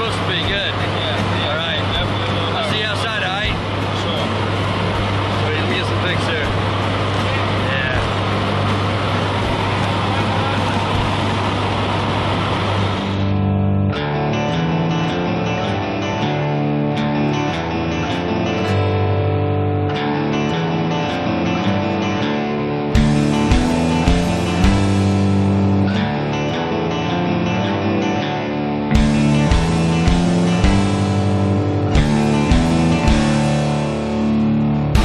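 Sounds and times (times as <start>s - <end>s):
faint voices: 0.0s - 13.2s
airplane engine drone: 0.0s - 13.6s, 23.0s - 26.3s, 29.0s - 35.0s
background music with strummed guitar: 0.0s - 35.0s.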